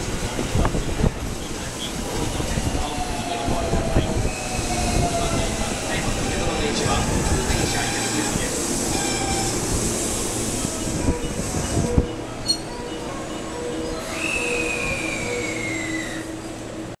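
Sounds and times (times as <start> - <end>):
electric train braking: 1.9 - 16.8.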